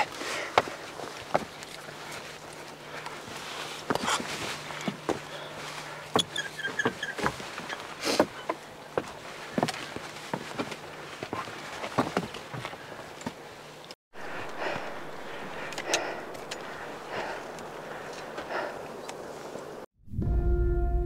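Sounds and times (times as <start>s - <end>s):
boots on rock and loose scree: 0.4s - 13.4s.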